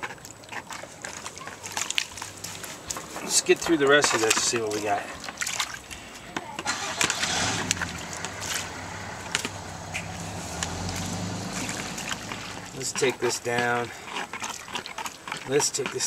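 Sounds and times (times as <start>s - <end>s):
water sloshing and splashing: 0.0s - 16.0s
low engine-like hum: 6.7s - 13.0s.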